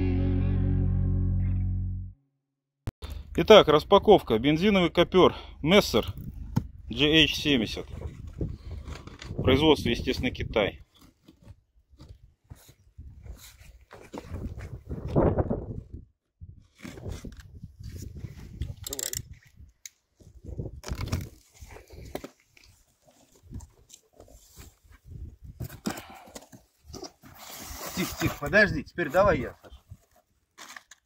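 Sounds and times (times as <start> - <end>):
tape tearing: 20.8 - 21.5, 30.5 - 31.0.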